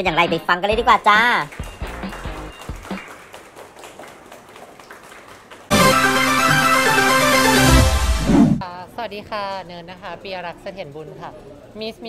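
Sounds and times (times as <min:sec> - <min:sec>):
light applause: 0:01.2 - 0:07.6
loud electronic music sting: 0:05.7 - 0:08.6.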